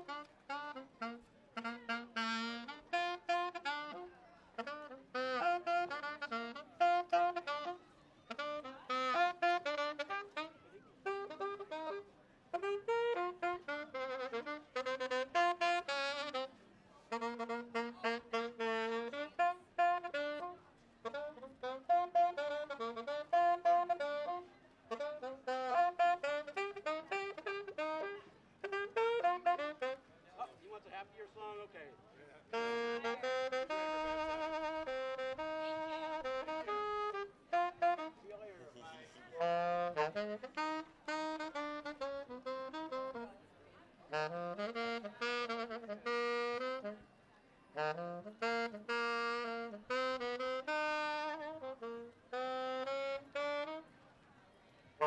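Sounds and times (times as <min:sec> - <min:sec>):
solo saxophone melody: 0:00.0 - 0:30.1, 0:32.4 - 0:43.4, 0:44.0 - 0:47.1, 0:47.7 - 0:54.0.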